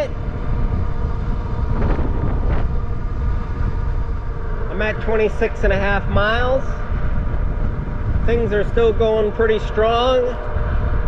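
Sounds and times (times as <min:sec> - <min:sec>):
electric bike running: 0:00.0 - 0:11.0
wind rumble on microphone: 0:00.0 - 0:11.0.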